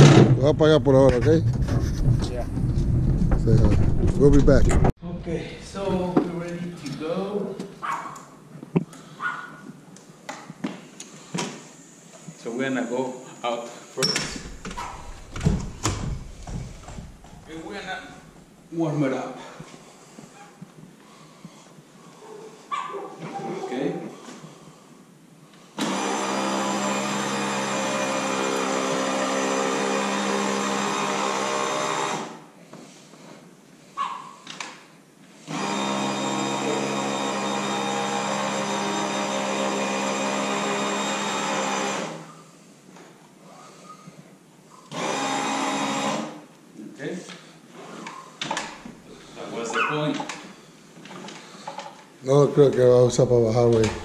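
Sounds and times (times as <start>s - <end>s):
stair-climbing dolly motor running: 14.4s - 18.4s.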